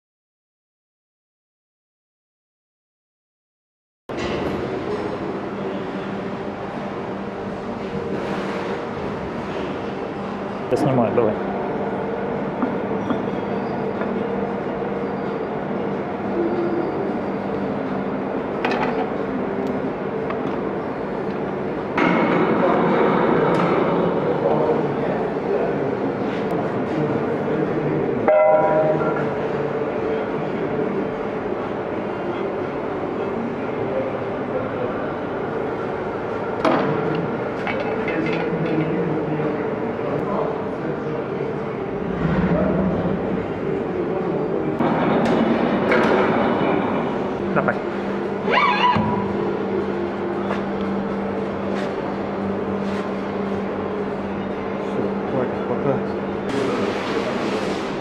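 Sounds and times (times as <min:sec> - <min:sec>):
workshop machinery hum: 0:04.1 - 0:58.0.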